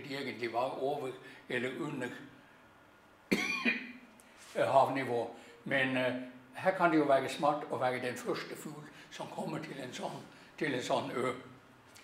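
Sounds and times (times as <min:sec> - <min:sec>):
man speaking: 0:00.0 - 0:02.3, 0:04.5 - 0:11.5
man coughing: 0:03.3 - 0:04.0.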